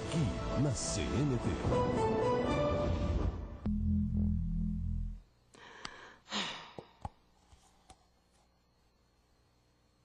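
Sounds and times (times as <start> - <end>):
person sighing: 5.6 - 7.1.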